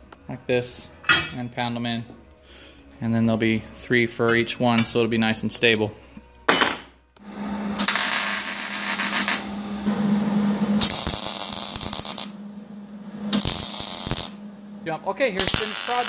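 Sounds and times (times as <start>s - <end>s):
drill bit cutting steel: 15.4s - 16.0s.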